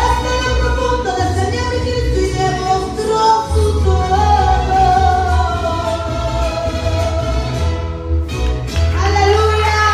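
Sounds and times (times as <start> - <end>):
woman singing through speakers: 0.0 - 7.8, 8.9 - 9.9
musical accompaniment with bass: 0.0 - 9.9.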